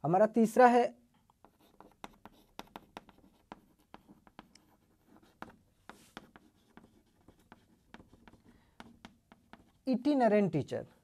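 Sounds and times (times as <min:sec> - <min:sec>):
chalk tapping and scratching: 0:01.2 - 0:09.9
chalk scraping on chalkboard: 0:01.4 - 0:09.9.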